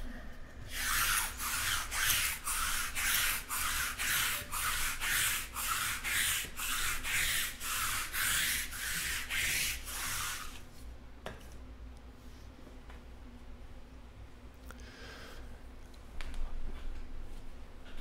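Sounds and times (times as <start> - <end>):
rhythmic rubbing strokes: 0.7 - 10.6.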